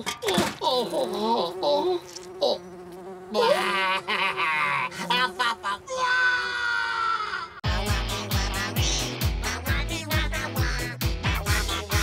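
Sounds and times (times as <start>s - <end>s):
cartoon fly buzzing: 0.7s - 12.0s.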